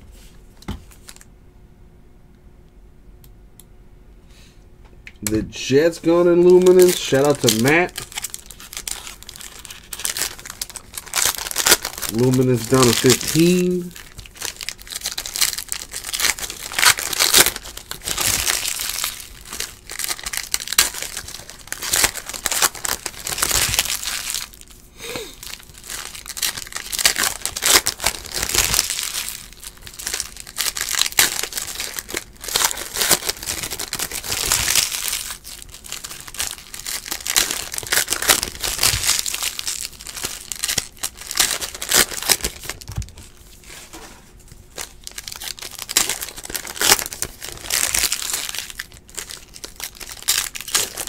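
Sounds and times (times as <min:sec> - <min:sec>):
foil wrappers crinkling and tearing: 0:00.9 - 0:01.3, 0:05.6 - 0:51.0.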